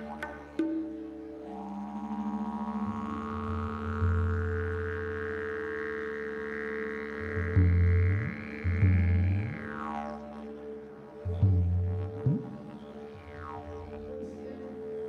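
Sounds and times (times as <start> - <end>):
didgeridoo droning: 0.0 - 15.0
psychedelic electronic music: 0.0 - 15.0.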